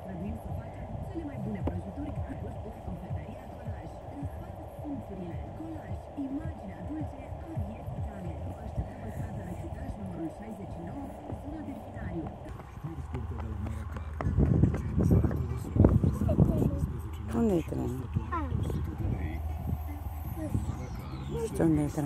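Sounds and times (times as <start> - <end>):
indistinct voices talking: 0.0 - 22.0
wind buffeting microphone: 0.0 - 22.0.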